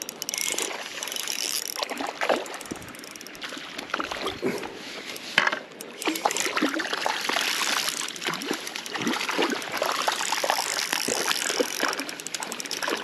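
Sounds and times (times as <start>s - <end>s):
fish thrashing and splashing in water: 0.0s - 4.8s, 5.8s - 13.0s.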